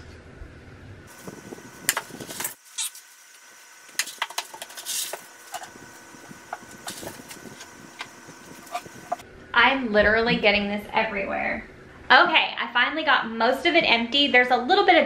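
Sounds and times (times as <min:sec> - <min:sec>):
plastic scoop digging substrate: 0:04.0 - 0:05.8, 0:06.5 - 0:09.2.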